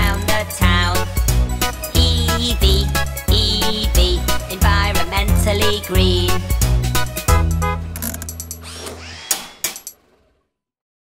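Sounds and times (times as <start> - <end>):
sharp clicks: 7.9 - 10.0.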